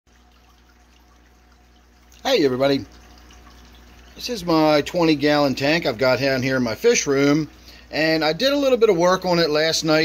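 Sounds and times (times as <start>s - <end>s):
water trickling and dripping: 0.1s - 10.0s.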